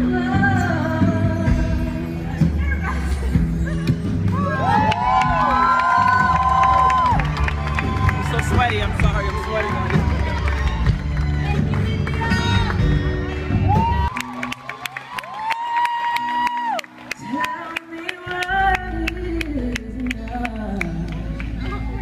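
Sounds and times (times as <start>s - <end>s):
live band music: 0.0s - 15.2s
crowd cheering and screaming: 3.7s - 18.4s.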